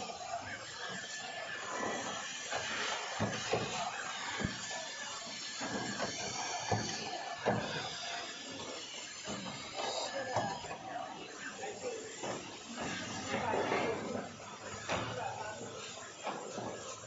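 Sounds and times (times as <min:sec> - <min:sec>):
people talking indistinctly: 0:00.0 - 0:17.0.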